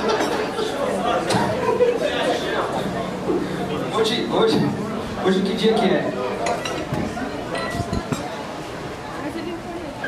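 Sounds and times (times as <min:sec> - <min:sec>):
glasses and cutlery clinking: 0:06.3 - 0:08.4.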